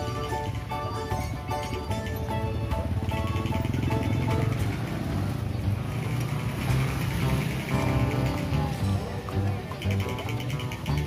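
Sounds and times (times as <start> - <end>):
background music: 0.0 - 11.0
motorcycle engine passing by: 2.7 - 11.0.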